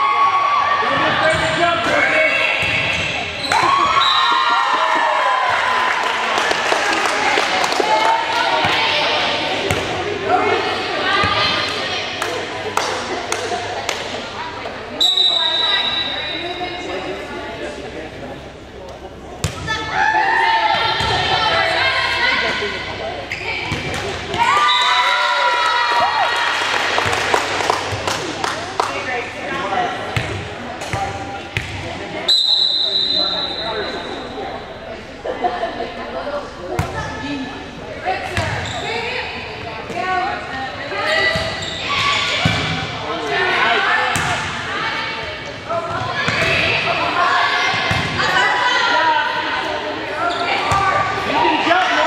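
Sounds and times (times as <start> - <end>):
people shouting and cheering: 0.0 - 17.2, 19.6 - 29.9
referee's whistle: 3.4 - 4.4, 15.0 - 16.5, 32.3 - 34.4.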